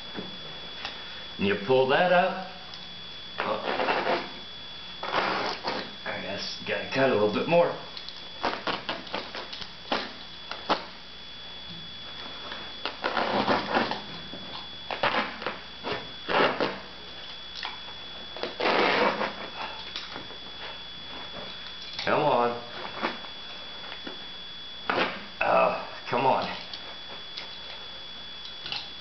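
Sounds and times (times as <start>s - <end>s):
knife scraping through carpet: 5.0s - 5.9s, 13.1s - 14.0s.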